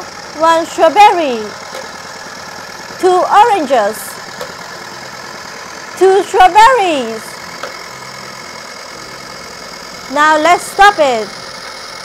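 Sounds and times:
toy blender motor running: 0:00.0 - 0:12.0.

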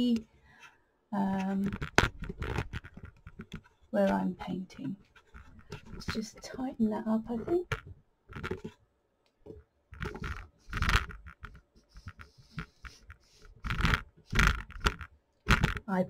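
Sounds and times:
webcam handling knocks and scrapes: 0:01.4 - 0:08.8, 0:09.4 - 0:15.9.

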